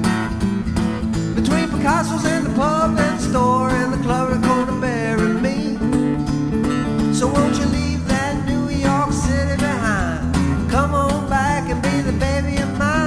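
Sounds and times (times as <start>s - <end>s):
acoustic guitar strumming: 0.0s - 13.0s
man singing: 1.3s - 6.3s, 7.0s - 13.0s.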